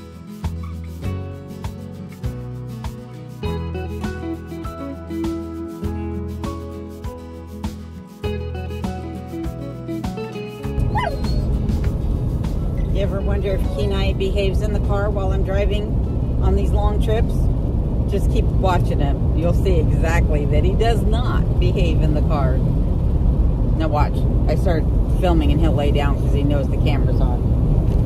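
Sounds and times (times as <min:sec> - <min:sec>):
music: 0:00.0 - 0:17.5
road rumble: 0:00.0 - 0:28.0
dog yipping and whining: 0:00.6 - 0:00.9, 0:10.2 - 0:11.6.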